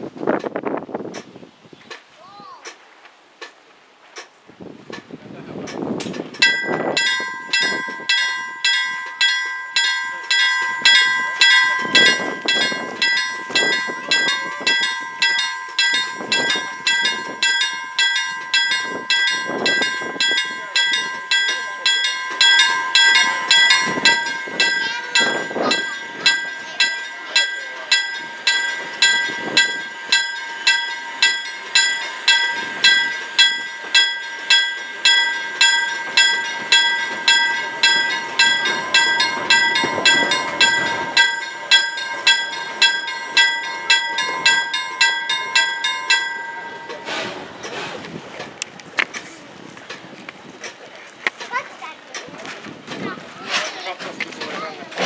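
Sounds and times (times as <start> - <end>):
train rumbling over crossing: 4.2 - 55.0
crossing warning bell ringing: 5.6 - 48.7.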